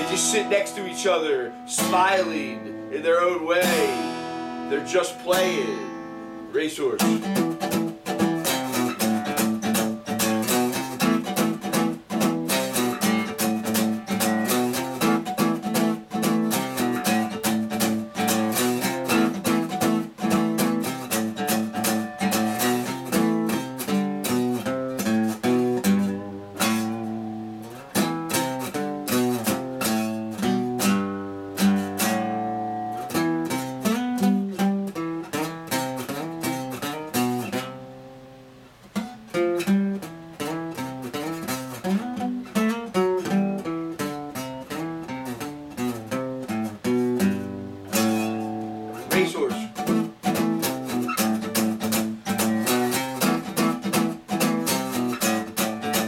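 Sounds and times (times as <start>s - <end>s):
acoustic guitar strummed and picked: 0.0s - 56.0s.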